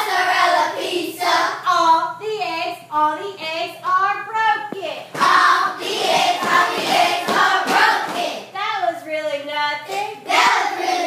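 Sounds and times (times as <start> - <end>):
children singing together: 0.0 - 1.6, 5.2 - 8.5, 9.9 - 11.0.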